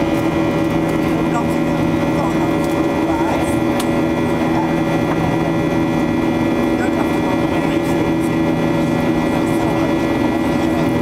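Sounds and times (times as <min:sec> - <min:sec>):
jet engines from inside cabin: 0:00.0 - 0:11.0.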